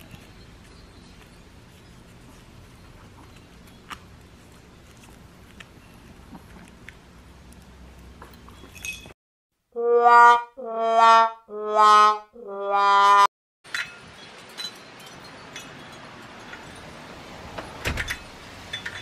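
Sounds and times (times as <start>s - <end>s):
low outdoor background: 0.0s - 19.0s
sad trombone sound effect: 9.8s - 13.3s.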